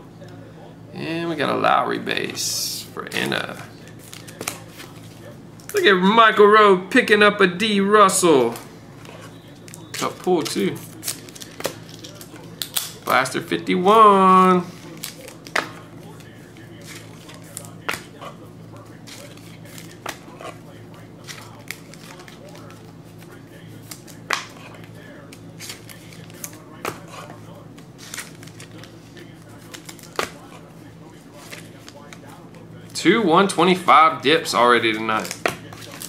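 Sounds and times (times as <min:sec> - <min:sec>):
steady low hum: 0:00.0 - 0:36.0
cards tapping and rustling: 0:03.1 - 0:05.8, 0:08.4 - 0:13.2, 0:14.7 - 0:33.0, 0:34.5 - 0:36.0.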